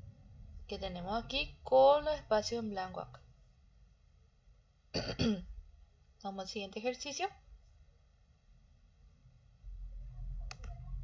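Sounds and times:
woman clearing her throat: 5.0 - 5.5.

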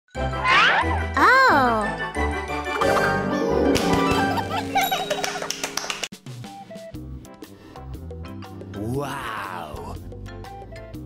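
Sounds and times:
bright jingle with chiming notes: 4.3 - 5.5.

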